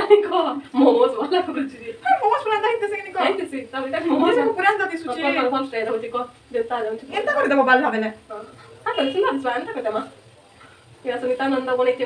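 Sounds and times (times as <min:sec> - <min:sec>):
woman speaking: 0:00.0 - 0:10.1, 0:11.0 - 0:12.0.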